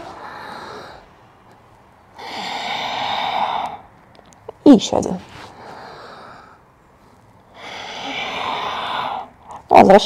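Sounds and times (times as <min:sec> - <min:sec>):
woman breathing through nose: 0:00.0 - 0:01.3, 0:05.4 - 0:09.4.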